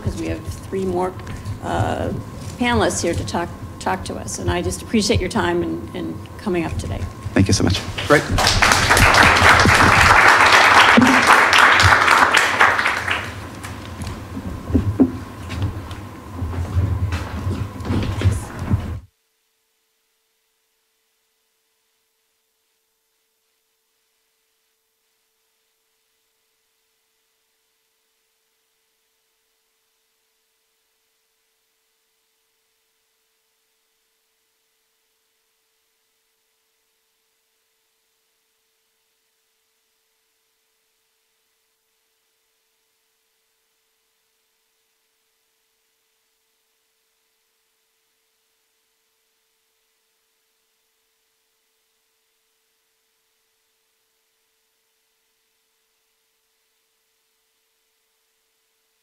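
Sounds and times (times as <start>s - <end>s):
faint hiss: 0.0s - 16.4s, 17.7s - 59.0s
steady low-level tone: 0.0s - 59.0s.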